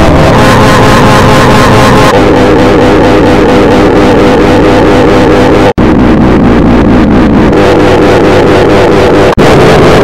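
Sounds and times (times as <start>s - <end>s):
distorted warbling bell: 0.0s - 4.8s.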